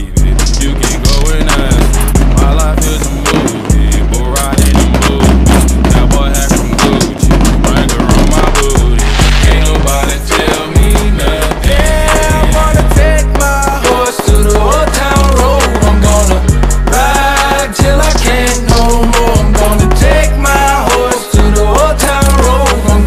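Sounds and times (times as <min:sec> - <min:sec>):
backing music with heavy bass: 0:00.0 - 0:23.0.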